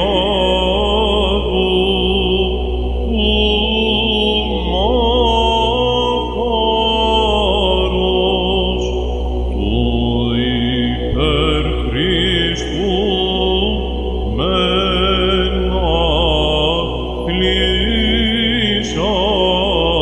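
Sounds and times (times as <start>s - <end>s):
person chanting ornamented melody: 0.0s - 20.0s
steady electronic drone: 0.0s - 20.0s.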